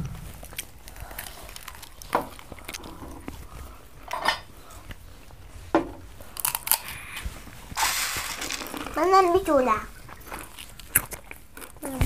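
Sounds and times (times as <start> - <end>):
crunchy snacks being chewed: 0.4 - 5.1, 6.2 - 9.0, 10.0 - 12.0.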